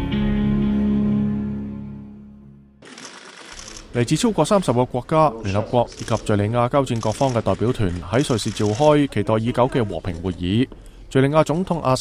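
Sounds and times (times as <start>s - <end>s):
rapid camera shutter clicking: 2.8s - 4.0s, 5.9s - 9.1s.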